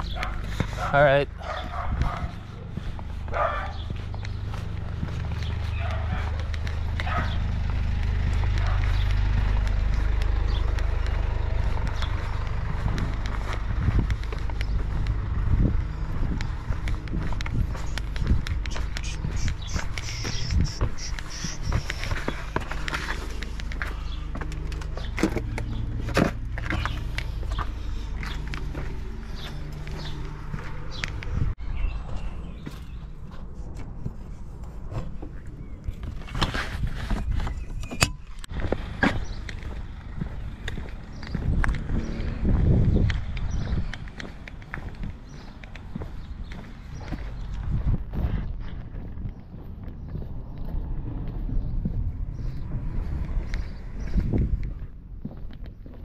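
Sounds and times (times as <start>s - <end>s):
footsteps: 0.0s - 37.7s
steady low rumble: 0.0s - 56.0s.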